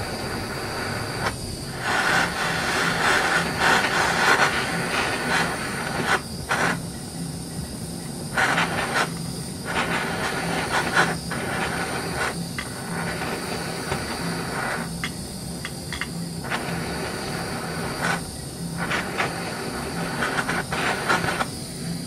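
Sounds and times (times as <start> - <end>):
gas torch flame hissing: 0.0 - 22.0.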